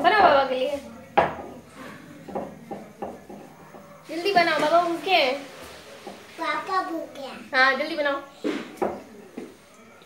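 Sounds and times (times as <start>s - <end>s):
small child's voice: 6.4s - 7.5s.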